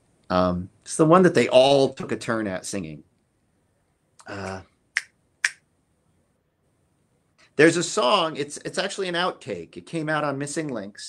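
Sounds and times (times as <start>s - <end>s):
finger snaps: 4.2s - 5.6s.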